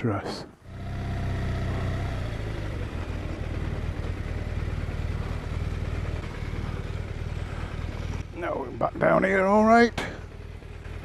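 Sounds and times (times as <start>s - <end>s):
motorcycle engine running at low revs: 0.6s - 11.0s.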